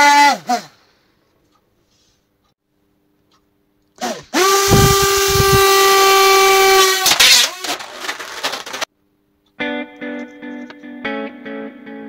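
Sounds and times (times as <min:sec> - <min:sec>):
guitar music: 0:09.6 - 0:12.0.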